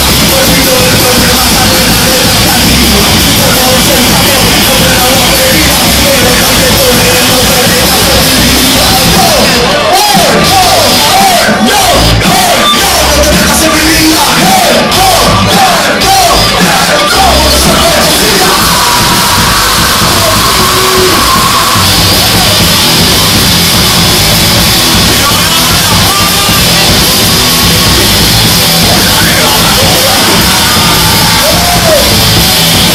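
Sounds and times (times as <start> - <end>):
crowd yelling: 0.0 - 32.9
live rock band playing: 0.0 - 32.9.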